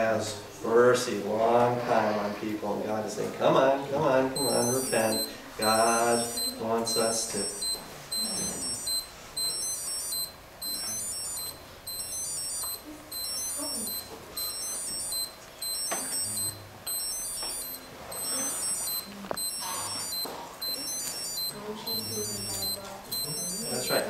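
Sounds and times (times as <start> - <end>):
high-pitched electronic tones: 4.4 - 24.0.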